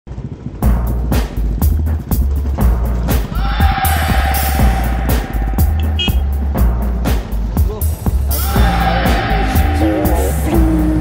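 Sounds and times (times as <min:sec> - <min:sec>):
electronic music with heavy bass: 0:00.6 - 0:11.0.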